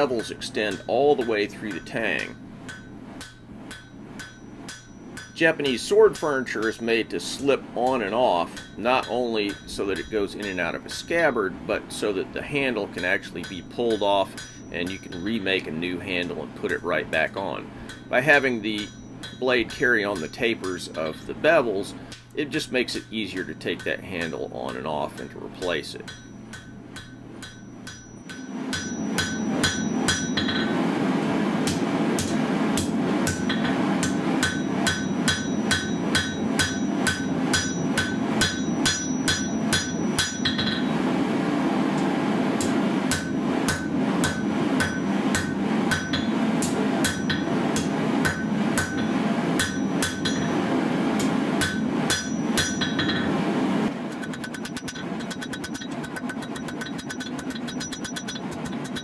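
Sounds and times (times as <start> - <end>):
hammer striking metal on anvil: 0.0 - 11.4, 12.0 - 22.3, 23.0 - 31.0, 31.6 - 41.2, 41.9 - 59.0.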